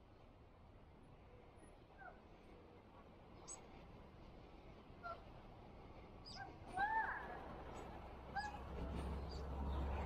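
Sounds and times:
low traffic rumble: 4.0s - 10.0s.

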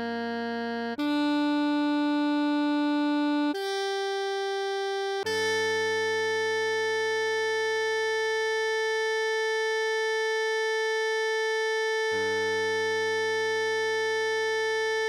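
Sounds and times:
synthesized saxophone note: 0.0s - 9.3s.

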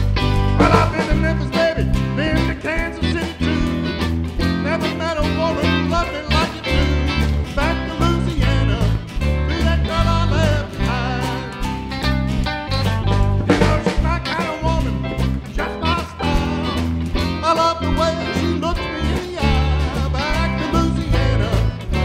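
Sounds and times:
live country-blues rock band: 0.0s - 22.0s.

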